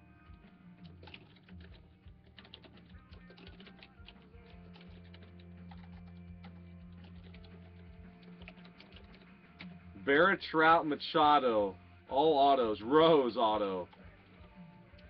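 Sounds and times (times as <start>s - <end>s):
faint background music: 0.0s - 15.0s
typing on a computer keyboard: 0.3s - 9.8s.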